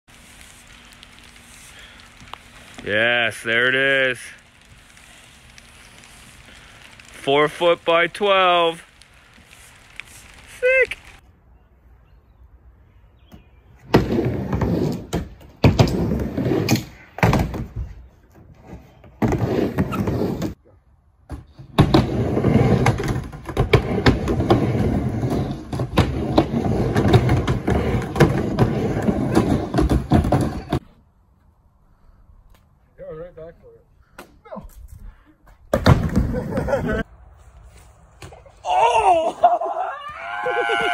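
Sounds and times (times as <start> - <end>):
skateboard wheels rolling on ramp: 13.8 - 20.6, 21.3 - 30.9, 35.7 - 37.1, 38.2 - 40.9.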